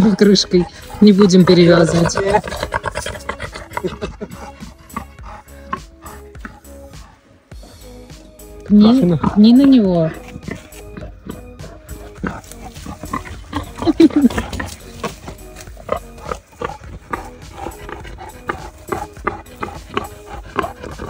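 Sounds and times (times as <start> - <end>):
boar rustling and snuffling: 0.0 - 21.0
boar call: 0.2 - 8.1, 8.8 - 21.0.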